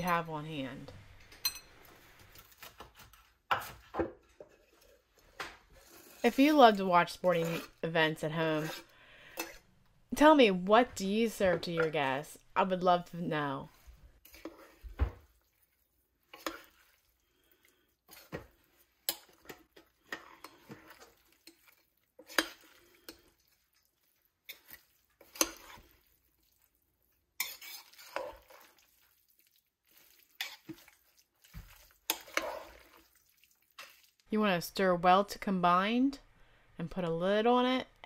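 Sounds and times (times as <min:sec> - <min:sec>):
metal spoon clinking and scraping crock: 0:27.4 - 0:28.4.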